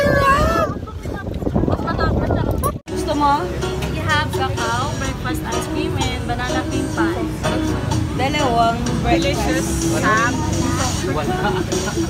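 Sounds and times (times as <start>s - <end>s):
voices talking: 0.0s - 12.0s
background music: 2.9s - 12.0s.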